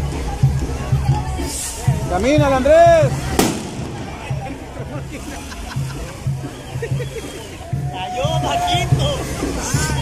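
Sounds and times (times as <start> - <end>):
skyrocket bang: 3.4 - 4.4.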